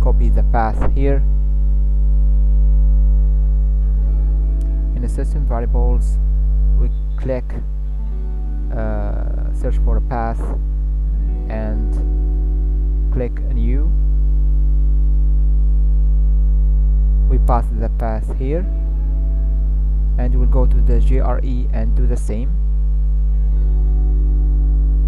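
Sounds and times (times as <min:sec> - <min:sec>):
electrical mains hum: 0:00.0 - 0:25.0.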